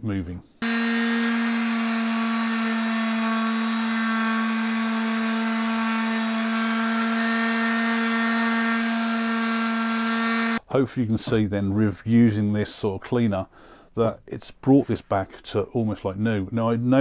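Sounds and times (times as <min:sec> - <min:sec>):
orbital sander running: 0:00.6 - 0:10.6.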